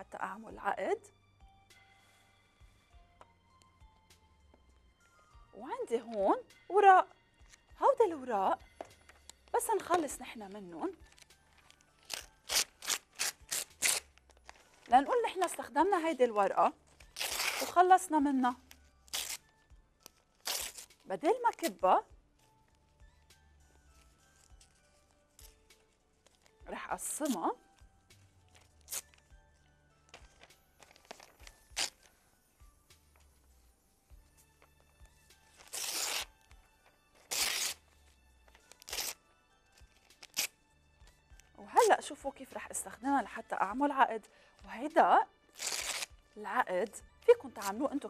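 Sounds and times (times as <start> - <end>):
paper tearing: 11.1 - 14.6, 17.0 - 17.8, 19.1 - 19.5, 20.4 - 21.8, 28.6 - 29.2, 30.4 - 32.1, 35.5 - 36.5, 37.2 - 39.2, 40.0 - 40.6, 45.5 - 46.1.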